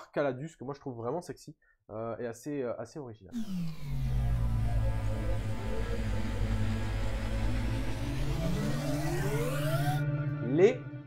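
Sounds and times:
deep electronic drone: 0:03.4 - 0:11.0
high sweeping noise: 0:03.4 - 0:11.0
rising tone: 0:03.4 - 0:11.0.

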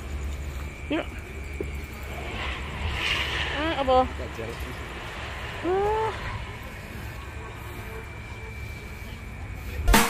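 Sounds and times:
road traffic rumble: 0:00.0 - 0:09.9
passing vehicle hiss: 0:01.8 - 0:10.0.

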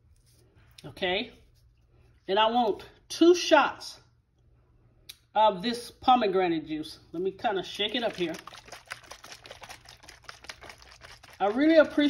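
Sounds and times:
plastic bottle being shaken: 0:07.5 - 0:12.0.

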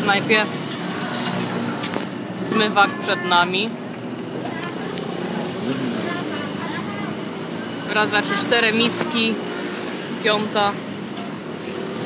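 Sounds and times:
traffic noise: 0:00.0 - 0:12.0
faint background voices: 0:02.4 - 0:09.6.

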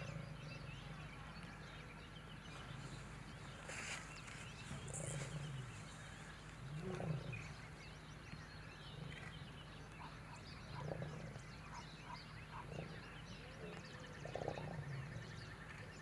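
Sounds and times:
lions growling: 0:04.3 - 0:07.8, 0:08.8 - 0:16.0.

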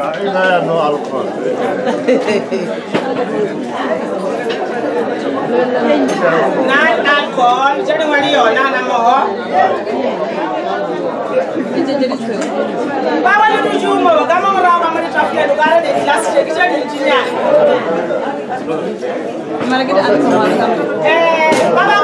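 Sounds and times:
background chatter: 0:00.0 - 0:22.0.

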